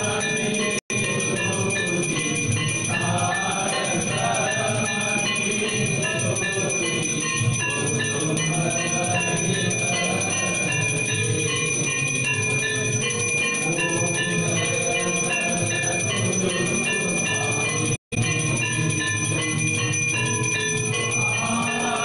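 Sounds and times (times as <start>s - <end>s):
temple bells ringing rapidly: 0.0s - 22.0s.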